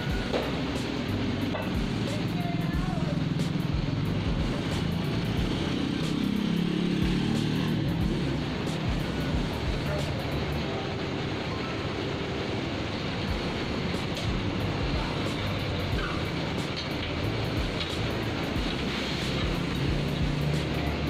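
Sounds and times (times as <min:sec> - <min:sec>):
low engine drone: 0:00.0 - 0:21.0
passing motor vehicle engines: 0:00.0 - 0:21.0.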